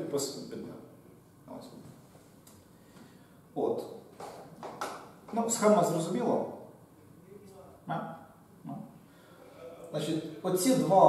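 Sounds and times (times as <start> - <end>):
man speaking: 5.3 - 11.0.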